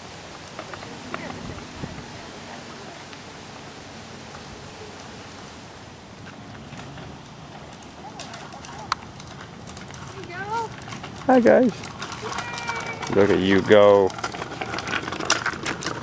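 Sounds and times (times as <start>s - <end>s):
bicycle rolling over rough pavement: 0.0s - 16.0s.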